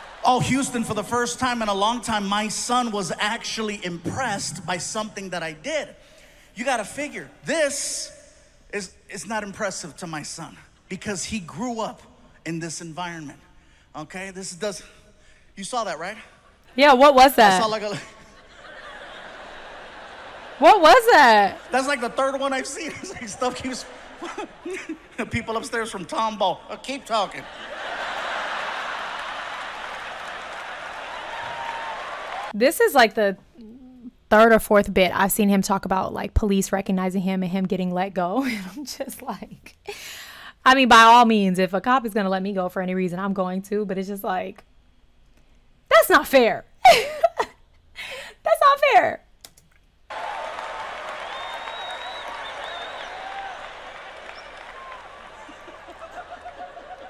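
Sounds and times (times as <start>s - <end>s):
audience applauding: 27.4s - 32.6s, 50.1s - 57.0s
high whistle: 51.1s - 55.7s.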